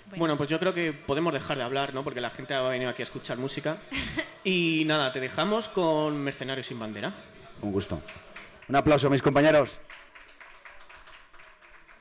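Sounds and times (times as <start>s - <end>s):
light scattered applause: 7.6s - 12.0s.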